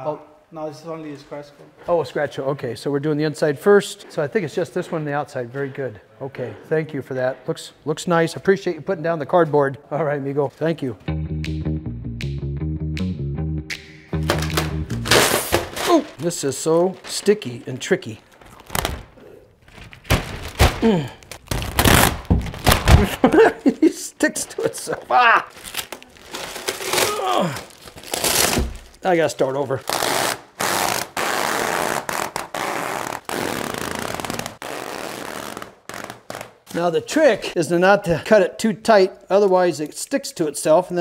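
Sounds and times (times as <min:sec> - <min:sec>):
background music: 0:11.0 - 0:15.7
plastic film ripping off roll: 0:14.3 - 0:17.3, 0:18.3 - 0:23.2, 0:25.5 - 0:29.0, 0:29.8 - 0:36.7.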